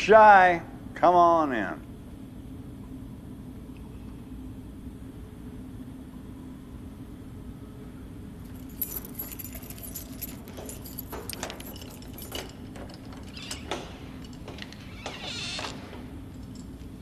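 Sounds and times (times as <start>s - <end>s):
low steady hum: 0.0s - 17.0s
keys jangling: 8.4s - 17.0s
metal rattling at mesh door: 8.5s - 17.0s.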